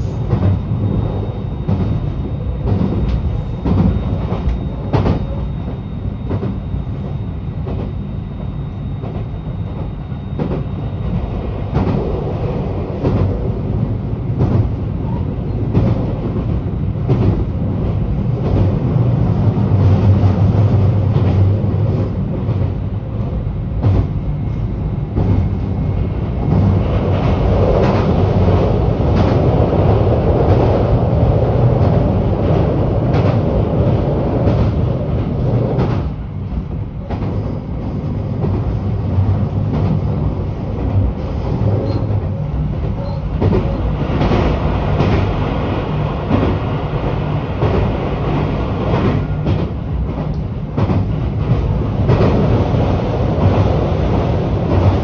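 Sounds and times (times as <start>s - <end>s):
train carriage rumble: 0.0s - 55.0s.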